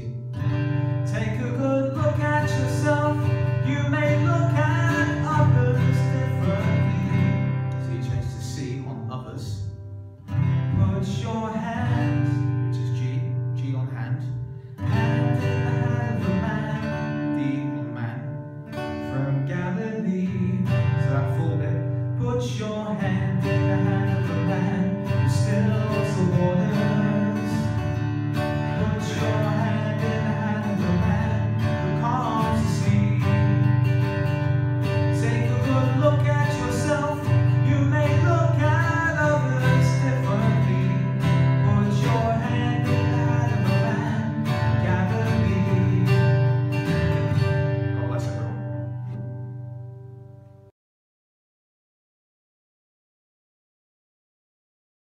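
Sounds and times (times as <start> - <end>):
acoustic guitar strumming: 0.0 - 50.7.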